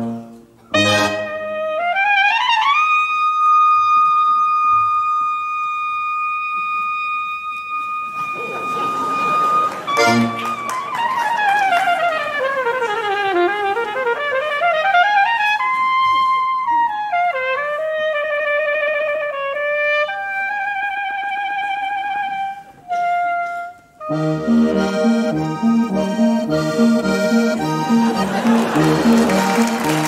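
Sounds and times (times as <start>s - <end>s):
brass band playing: 0.0s - 3.0s, 8.0s - 15.4s, 22.9s - 30.0s
solo wind instrument: 0.0s - 30.0s.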